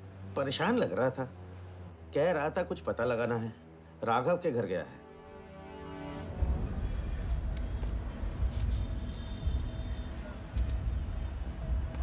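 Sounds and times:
low rumble of passing vehicles: 0.0s - 12.0s.

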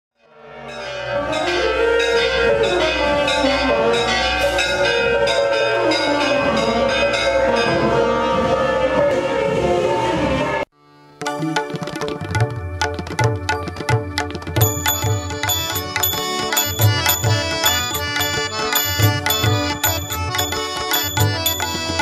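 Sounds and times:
temple bells ringing: 0.6s - 9.2s, 13.4s - 22.0s.

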